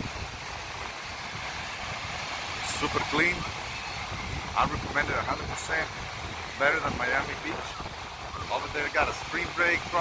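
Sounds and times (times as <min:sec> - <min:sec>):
surf breaking on beach: 0:00.0 - 0:10.0
wind blowing on microphone: 0:00.0 - 0:10.0.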